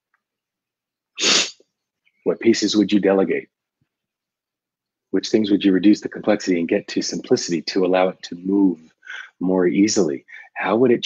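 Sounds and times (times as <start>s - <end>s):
man's sharp burst of breath: 1.2s - 1.6s
man speaking: 2.2s - 3.6s, 5.1s - 11.0s.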